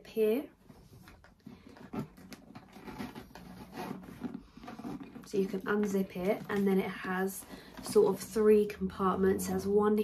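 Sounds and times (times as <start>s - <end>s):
leather rubbing and shifting: 0.8s - 8.4s.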